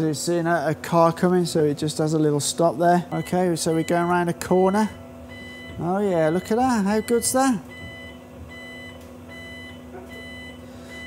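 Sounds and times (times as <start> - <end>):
steady low hum: 0.0 - 11.0
electronic beeper beeping: 5.3 - 11.0.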